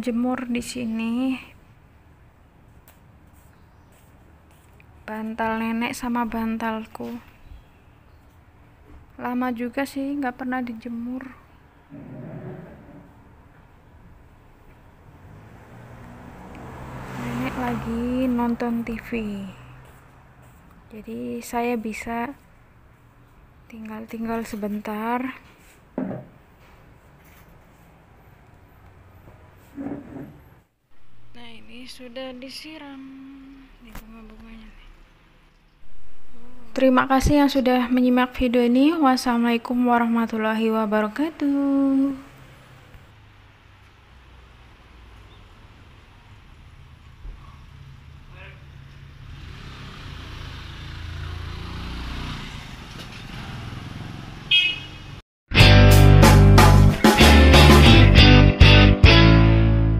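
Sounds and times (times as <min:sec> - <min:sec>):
vehicle passing by: 0:11.7 - 0:20.9, 0:27.8 - 0:37.7, 0:41.4 - 0:55.2.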